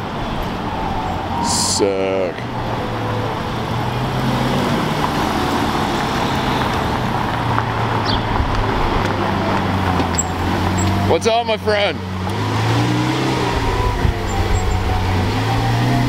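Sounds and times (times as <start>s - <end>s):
city traffic noise: 0.0s - 16.0s.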